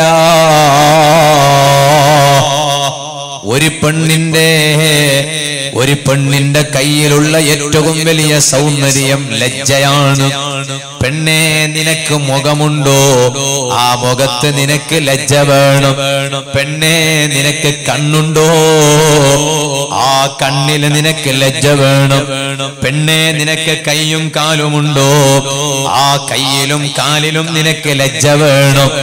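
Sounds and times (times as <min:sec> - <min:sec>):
man chanting: 0:00.0 - 0:29.0.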